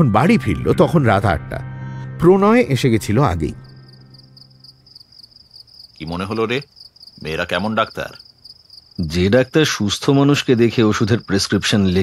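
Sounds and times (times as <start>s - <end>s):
crickets chirping: 2.7s - 12.0s.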